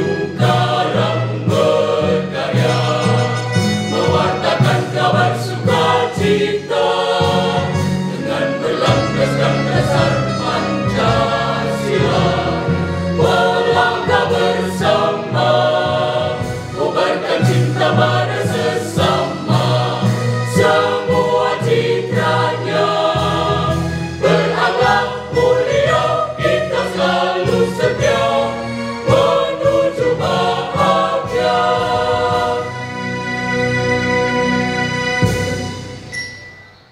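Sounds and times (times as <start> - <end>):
mixed choir singing: 0.0 - 34.4.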